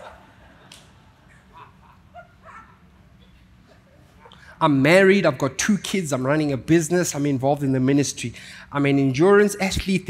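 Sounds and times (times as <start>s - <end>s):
audience chuckling and murmuring: 0.0s - 4.4s
low room hum: 0.0s - 10.0s.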